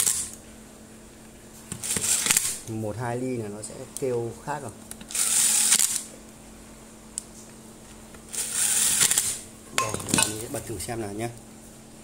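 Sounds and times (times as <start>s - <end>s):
electric drill driving screw: 0.0s - 0.3s, 1.7s - 2.6s, 5.0s - 6.1s, 8.3s - 9.4s.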